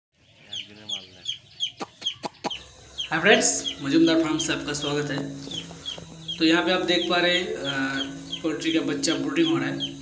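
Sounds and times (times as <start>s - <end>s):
chicks peeping: 0.2s - 10.0s.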